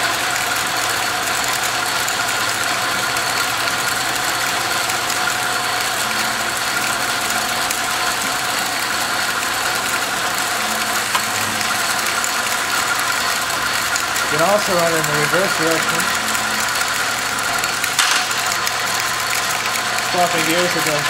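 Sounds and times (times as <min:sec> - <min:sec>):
metal lathe whirring: 0:00.0 - 0:21.0.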